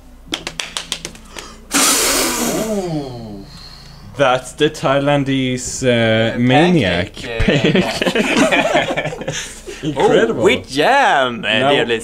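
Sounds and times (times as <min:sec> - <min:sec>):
loud rushing burst: 0:01.7 - 0:03.4.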